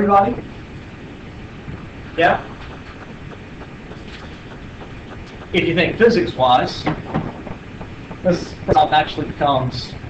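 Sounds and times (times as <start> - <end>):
low rumble and hiss: 0.0 - 10.0.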